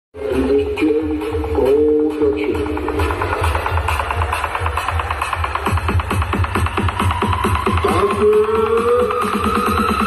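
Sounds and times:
loud bass-heavy music from speakers: 0.1s - 10.0s.

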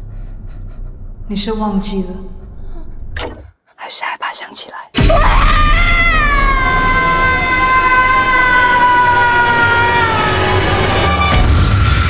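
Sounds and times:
low rumble: 0.0s - 3.5s
woman screaming: 5.0s - 11.0s.

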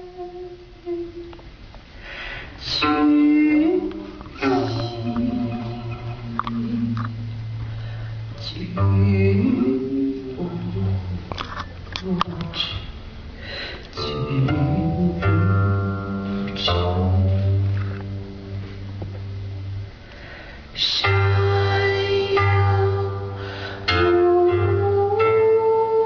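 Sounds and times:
person humming a sung note: 0.0s - 1.4s, 2.7s - 7.4s, 20.8s - 26.0s.

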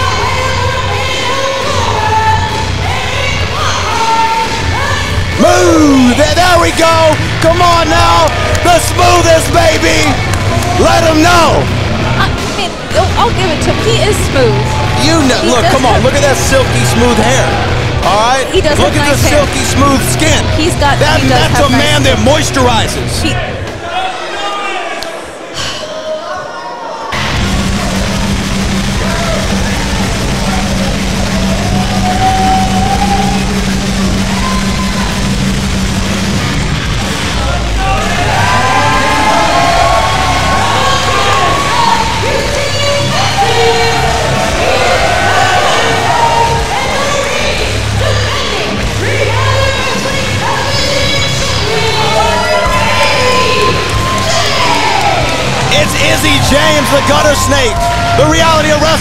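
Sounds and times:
entrance music over arena speakers: 0.0s - 24.2s, 27.1s - 59.0s.

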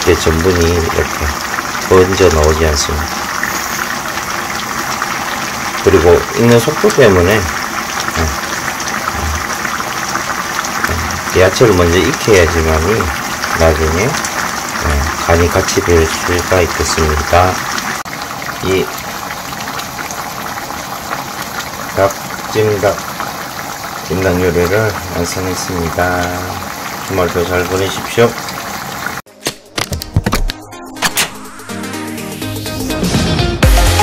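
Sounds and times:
sauce bubbling in a pan: 0.0s - 29.3s.

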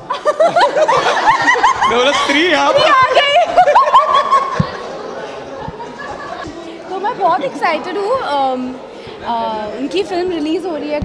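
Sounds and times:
murmuring voices: 0.0s - 11.0s
man and woman laughing: 0.1s - 4.9s.

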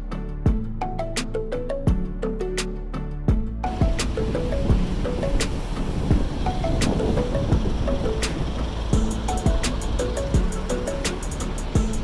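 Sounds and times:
upbeat background music: 0.0s - 12.0s
steady rushing noise: 3.7s - 12.0s.

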